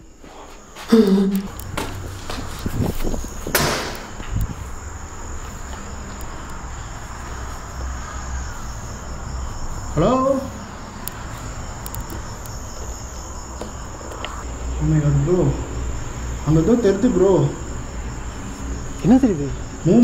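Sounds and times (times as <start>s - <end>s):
crickets chirping: 0.0s - 20.0s.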